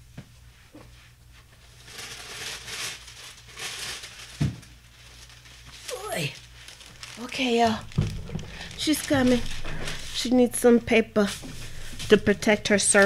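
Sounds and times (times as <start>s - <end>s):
rustling and handling noises: 0.2s - 13.0s.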